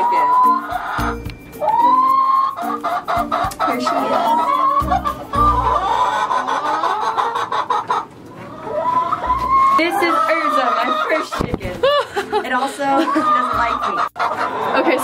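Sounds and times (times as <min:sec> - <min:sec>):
background music with a beat: 0:00.0 - 0:05.8
hens clucking and squawking: 0:00.0 - 0:15.0.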